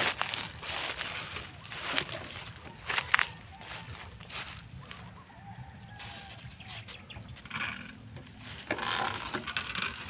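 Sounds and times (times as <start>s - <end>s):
rustling hiss of plants and spray: 5.9s - 7.1s
sprayer pump squeaks: 6.0s - 10.0s.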